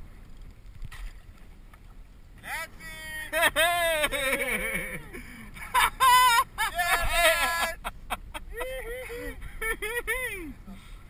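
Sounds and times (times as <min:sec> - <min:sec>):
water noise: 0:00.0 - 0:11.0
wind: 0:00.0 - 0:11.0
person shouting long calls: 0:02.4 - 0:05.1, 0:06.0 - 0:07.8.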